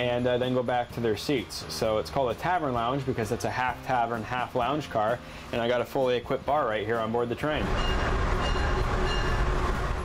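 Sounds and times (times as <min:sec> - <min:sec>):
train rumble inside passenger car: 0:07.6 - 0:10.0.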